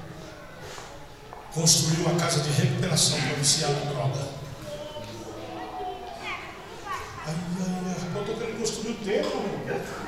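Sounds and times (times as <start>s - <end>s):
faint voices of congregation: 0.0s - 10.0s
child's high voice: 4.6s - 7.3s.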